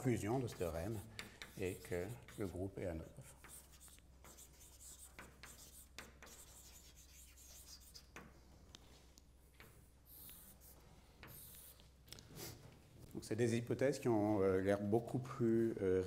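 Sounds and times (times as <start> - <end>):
chalk scratching on blackboard: 0.0 - 8.3, 9.6 - 11.8.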